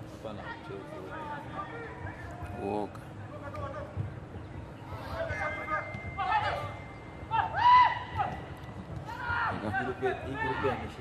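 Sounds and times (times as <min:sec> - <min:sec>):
people shouting: 0:06.2 - 0:08.5, 0:09.1 - 0:11.0.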